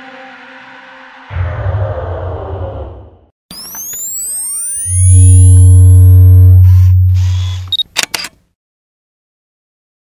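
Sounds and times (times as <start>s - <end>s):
loud deep steady tone: 4.9s - 7.7s
camera shutter clicks: 7.2s - 8.4s.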